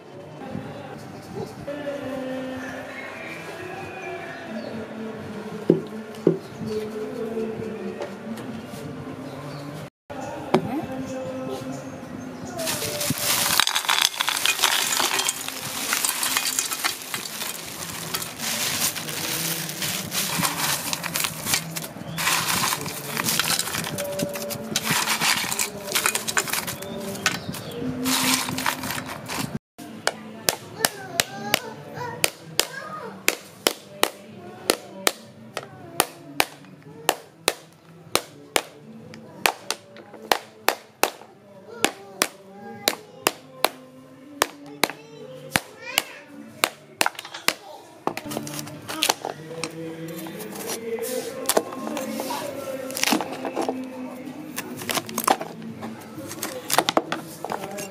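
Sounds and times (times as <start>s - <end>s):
crushed ice pouring into a pot: 12.7s - 24.1s.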